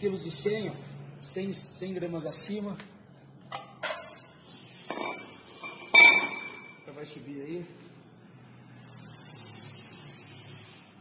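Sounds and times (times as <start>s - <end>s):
high metallic ring: 4.9s - 6.9s.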